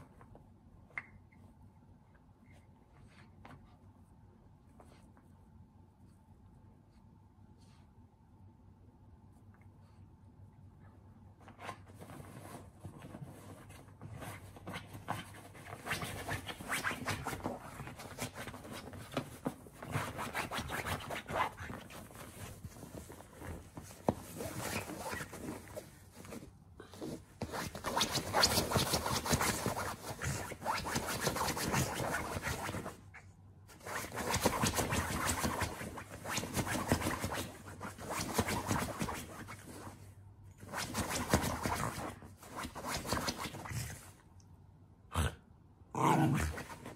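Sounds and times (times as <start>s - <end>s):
dog scratching at blanket: 11.4s - 33.0s, 33.7s - 44.2s, 46.4s - 46.9s.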